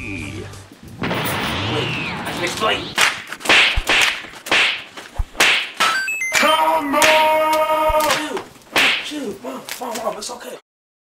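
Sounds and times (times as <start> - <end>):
whip-like swishing strikes: 1.0 - 5.8, 8.8 - 9.1.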